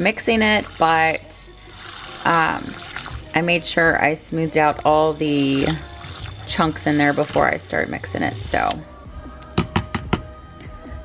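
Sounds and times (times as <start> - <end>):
milk frother hum: 0.1 - 3.6, 4.4 - 8.8
whisk tapping plastic cup: 9.4 - 10.3.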